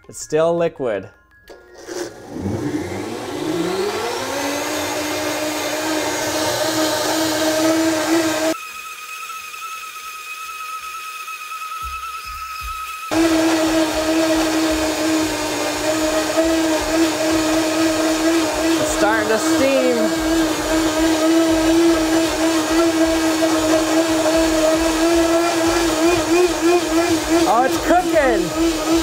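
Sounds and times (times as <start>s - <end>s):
blender motor whining: 1.5s - 29.0s.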